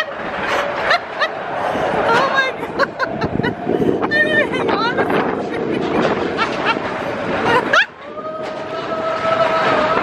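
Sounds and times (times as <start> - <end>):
coaster car rumbling on track: 0.0 - 10.0.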